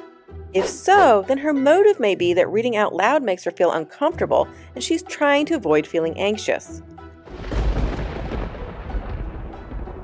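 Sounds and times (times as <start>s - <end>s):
background music: 0.0s - 10.0s
thunder: 7.3s - 10.0s.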